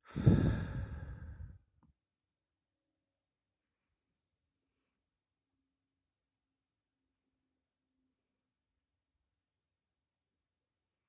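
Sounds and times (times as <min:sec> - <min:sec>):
person sighing: 0:00.0 - 0:01.6.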